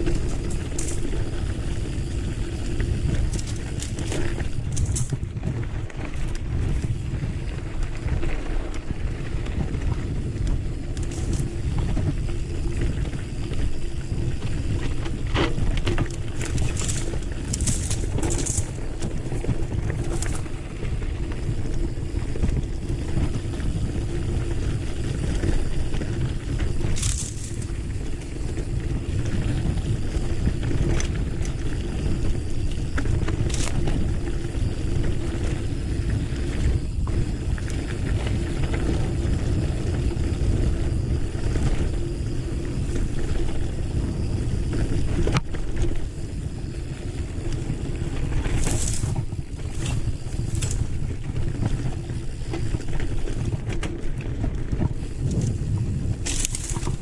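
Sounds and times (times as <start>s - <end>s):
bike tyres rumbling on dirt: 0.0s - 57.0s.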